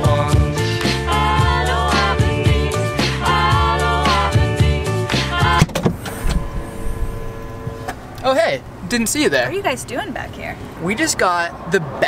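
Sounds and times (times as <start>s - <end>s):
background music: 0.0s - 5.8s
car hatch opening with mechanical whine: 5.4s - 9.7s.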